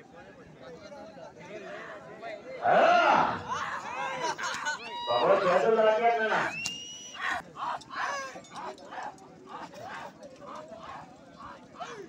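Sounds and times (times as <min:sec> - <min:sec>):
men shouting faintly: 0:07.2 - 0:12.0.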